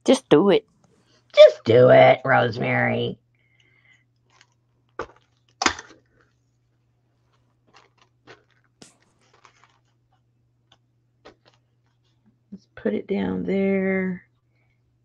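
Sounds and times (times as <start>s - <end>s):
steady low hum: 1.5s - 4.0s
paper clicks and rustles: 4.3s - 6.5s, 7.3s - 12.2s.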